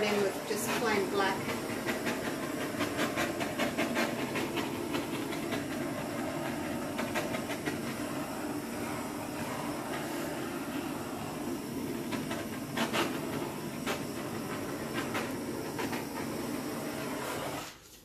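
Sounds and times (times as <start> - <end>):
gas torch flame hissing: 0.0 - 17.9.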